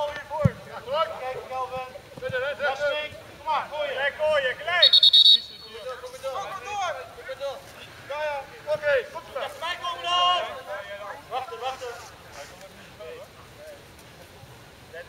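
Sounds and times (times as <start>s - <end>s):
players and spectators shouting: 0.0s - 11.9s
referee's whistle blast: 4.8s - 5.9s.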